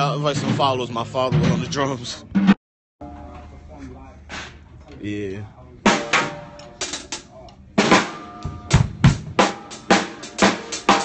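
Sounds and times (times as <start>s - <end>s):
faint indistinct voices: 3.0s - 8.7s.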